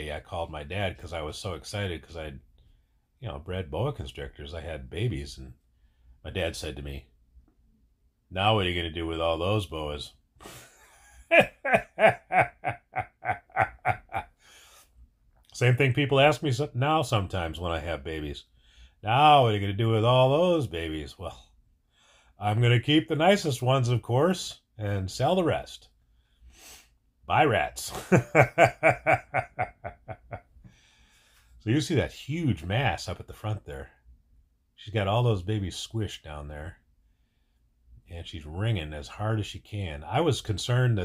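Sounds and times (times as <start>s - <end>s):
man laughing: 10.4s - 14.4s, 27.6s - 30.5s.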